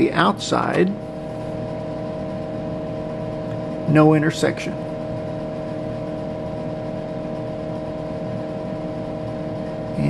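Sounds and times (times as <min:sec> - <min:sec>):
computer humming: 0:00.0 - 0:10.0.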